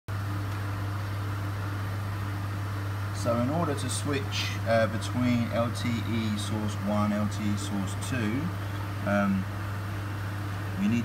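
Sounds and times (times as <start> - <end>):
fan-like hiss: 0.1 - 11.0
low machine hum: 0.1 - 11.0.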